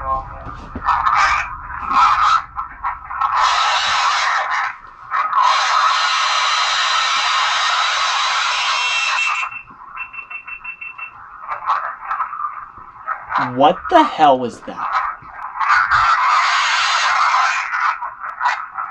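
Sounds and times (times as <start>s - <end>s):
short electronic pulses: 0.0s - 17.2s
screaming from small speaker: 3.3s - 9.5s, 15.7s - 18.6s.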